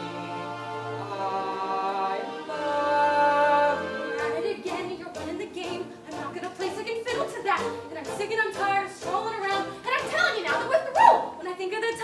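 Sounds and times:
show-tune duet singing: 0.0s - 12.0s.

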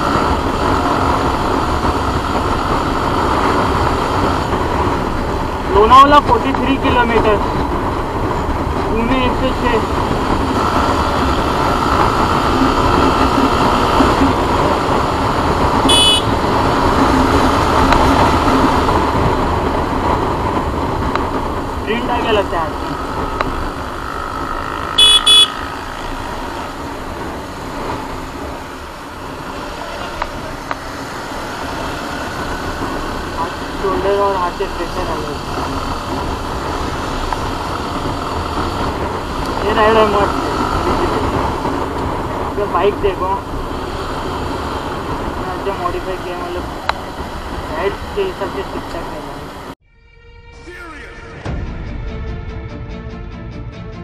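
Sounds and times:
motorcycle engine at speed: 0.0s - 49.8s
wind rushing over microphone: 0.0s - 49.8s
road noise: 0.0s - 54.0s
high-pitched horn beeps: 15.8s - 16.4s, 25.0s - 25.7s.

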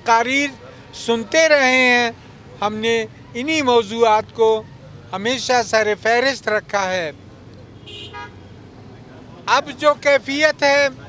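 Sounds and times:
low traffic hum: 0.0s - 11.0s
vehicle horn toot: 7.8s - 8.5s.

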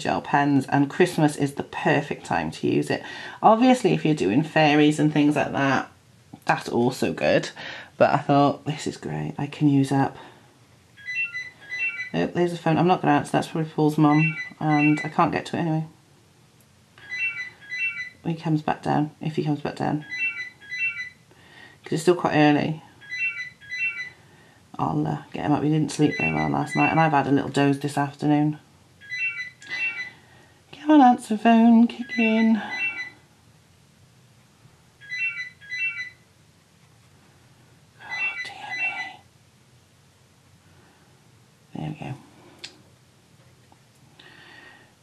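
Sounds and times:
telephone electronic ringtone: 11.0s - 12.2s, 14.1s - 15.2s, 17.0s - 18.2s, 20.0s - 21.2s, 23.0s - 24.2s, 26.0s - 27.1s, 29.0s - 30.3s, 32.0s - 33.2s, 35.0s - 36.2s, 38.1s - 39.2s
telephone electronic double ring: 35.0s - 36.2s.

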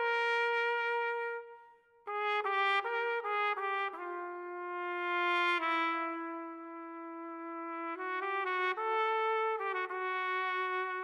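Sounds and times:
solo trumpet playing: 0.0s - 11.0s.

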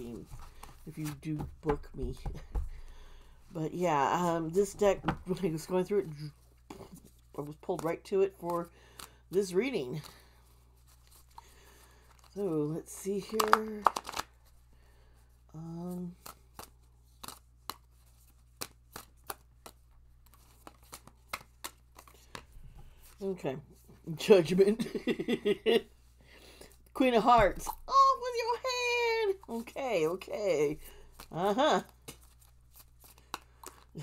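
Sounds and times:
cards being shuffled: 0.0s - 3.2s, 4.2s - 14.6s, 15.8s - 23.3s, 27.4s - 34.0s.

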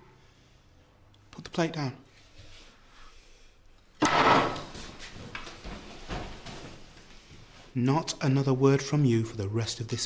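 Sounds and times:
plate slammed on table: 4.0s - 4.7s
shuffling: 4.7s - 7.8s.

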